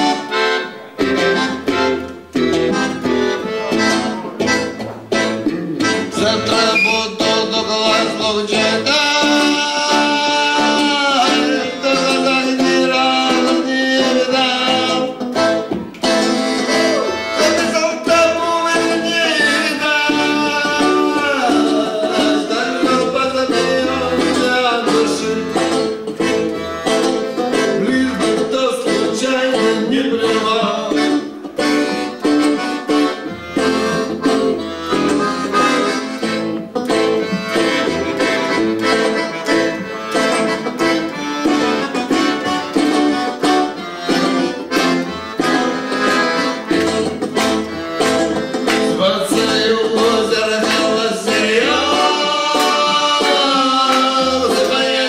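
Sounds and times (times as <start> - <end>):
live instrumental band music: 0.0 - 55.0.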